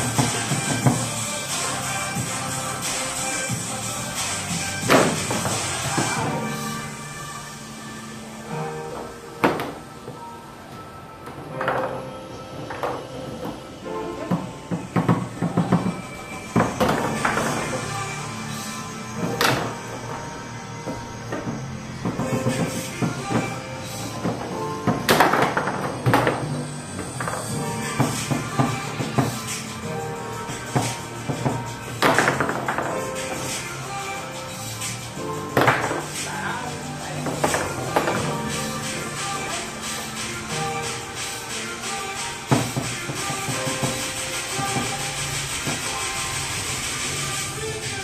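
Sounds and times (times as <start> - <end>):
background music: 0.0 - 48.0
foosball ball clacks: 4.8 - 6.3, 9.0 - 10.2, 14.3 - 18.0, 19.2 - 20.2, 20.9 - 29.4, 30.6 - 33.6, 35.5 - 36.3, 37.1 - 39.6, 42.4 - 47.0.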